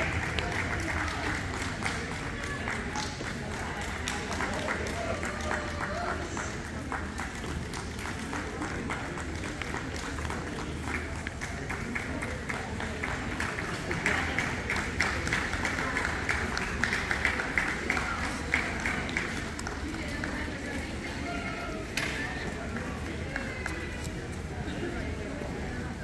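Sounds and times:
murmur of crowd chatter: 0:00.0 - 0:26.0
spectators clapping: 0:00.0 - 0:26.0.

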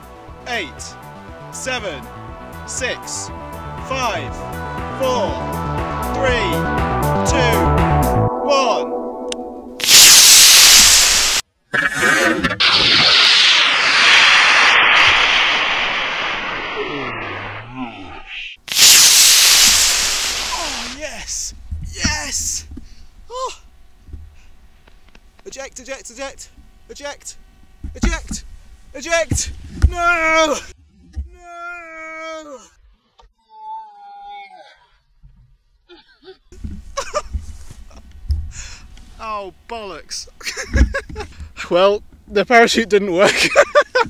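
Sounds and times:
rocket motors roaring: 0:09.8 - 0:21.6.

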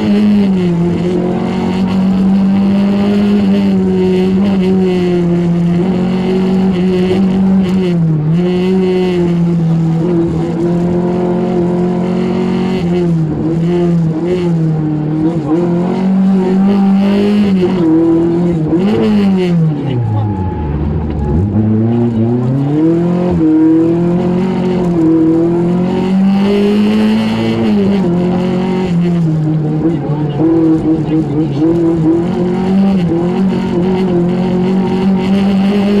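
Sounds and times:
car engine revving: 0:00.0 - 0:36.0.

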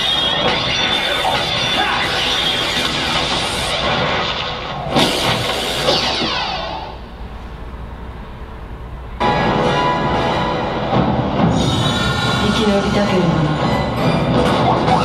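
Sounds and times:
fight sound effects: 0:00.0 - 0:07.0
sharp hit: 0:00.0 - 0:07.3
action music over loudspeakers: 0:09.2 - 0:15.0.

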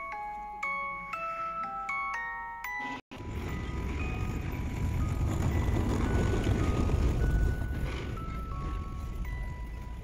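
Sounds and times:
tram rumbling: 0:03.1 - 0:10.0.

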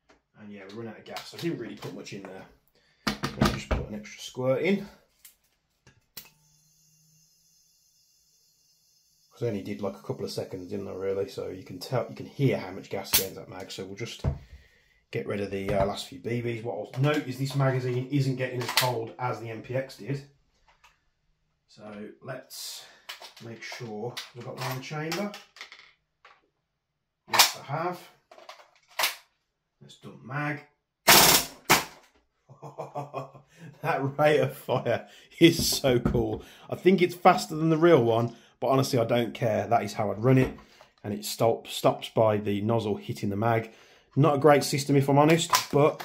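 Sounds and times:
airsoft gun shot: 0:31.1 - 0:32.0.

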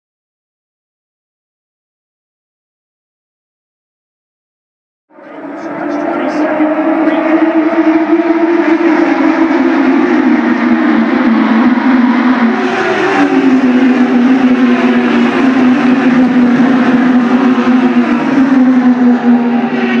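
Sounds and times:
race cars passing at speed: 0:05.1 - 0:20.0.

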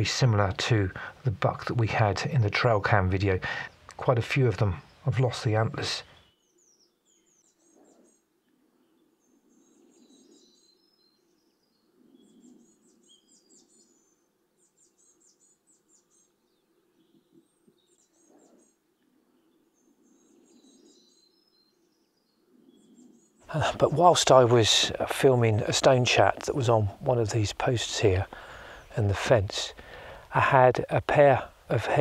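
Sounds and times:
faint birdsong chirping: 0:00.0 - 0:32.0.

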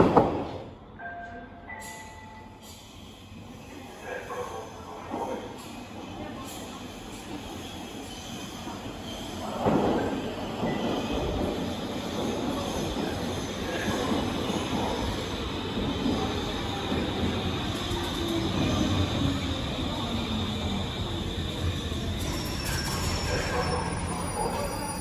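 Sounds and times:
train wheels rumbling on rail: 0:02.6 - 0:25.0
high wheel squeal: 0:21.1 - 0:25.0.

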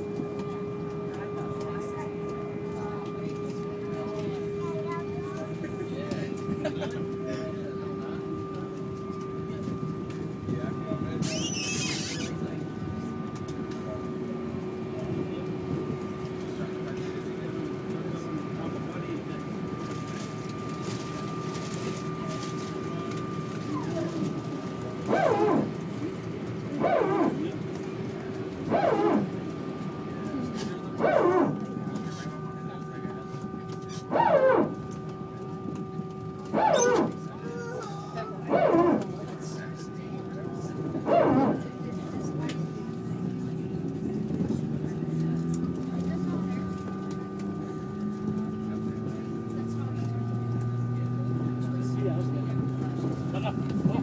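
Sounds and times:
jet engines humming in cabin: 0:00.0 - 0:54.0.

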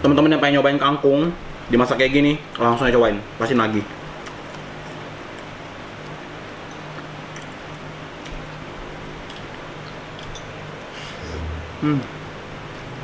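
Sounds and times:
low hum and room hiss: 0:00.0 - 0:13.0.

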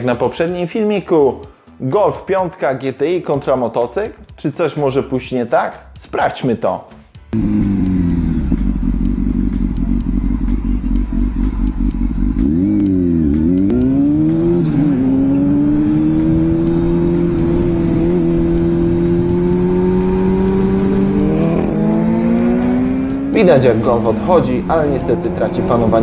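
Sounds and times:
motorcycle engine accelerating: 0:07.3 - 0:26.0
low rumble: 0:07.4 - 0:13.7.

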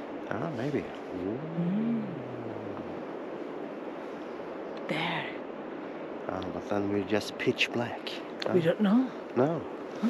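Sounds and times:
wind noise: 0:00.0 - 0:10.0
person humming: 0:01.2 - 0:03.0.

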